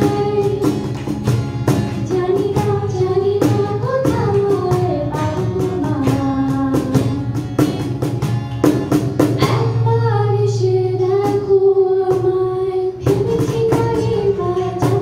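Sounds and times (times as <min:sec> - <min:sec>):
woman singing into a microphone: 0:00.0 - 0:00.9, 0:02.0 - 0:07.5, 0:09.4 - 0:15.0
cajon beats: 0:00.0 - 0:15.0
strummed acoustic guitar: 0:00.0 - 0:15.0.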